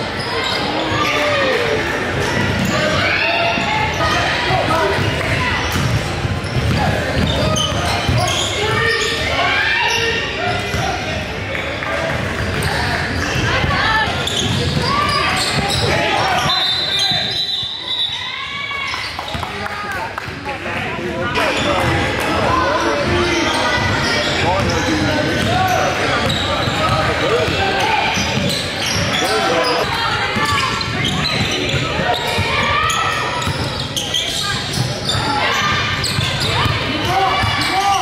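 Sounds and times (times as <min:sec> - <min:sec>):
sneakers squeaking: 0:00.0 - 0:19.6, 0:21.3 - 0:38.0.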